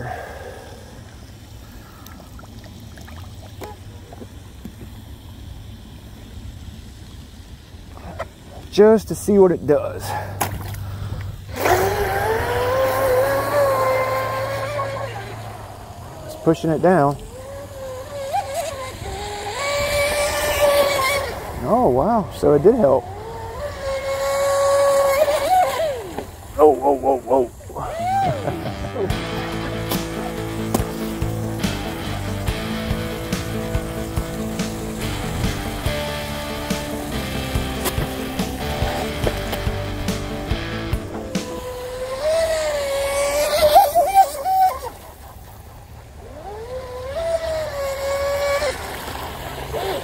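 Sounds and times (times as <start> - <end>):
electric motor and propeller whining: 0.0 - 50.0.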